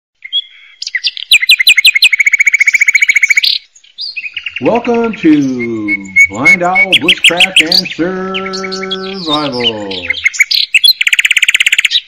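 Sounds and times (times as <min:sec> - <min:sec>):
songbird singing: 0:00.2 - 0:12.0.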